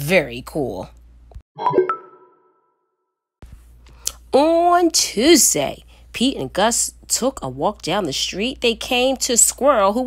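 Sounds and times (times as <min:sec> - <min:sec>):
bright plinking tones: 0:01.6 - 0:02.7.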